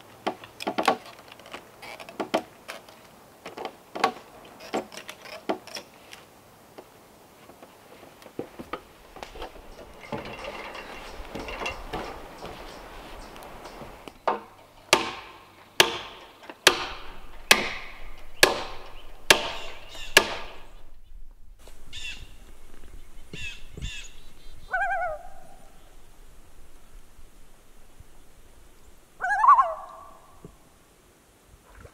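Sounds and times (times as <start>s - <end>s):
sharp ringing knocks: 9.4s - 21.0s
short bird calls: 17.0s - 30.6s.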